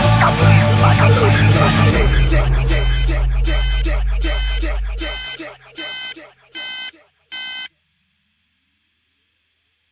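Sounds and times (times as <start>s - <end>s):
electronic beep: 2.2s - 7.7s.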